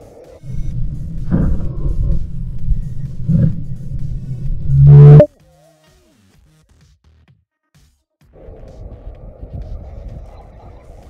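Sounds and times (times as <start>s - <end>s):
wind buffeting microphone: 0.5s - 5.3s, 8.5s - 10.9s.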